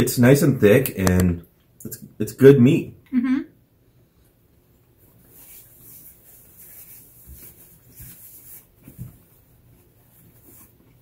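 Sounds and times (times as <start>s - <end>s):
paper napkin rustling: 5.1s - 11.0s.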